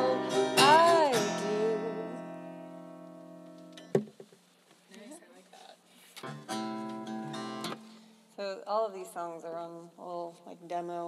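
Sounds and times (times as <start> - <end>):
acoustic guitar chord strummed: 0.0 - 4.0, 6.2 - 8.2.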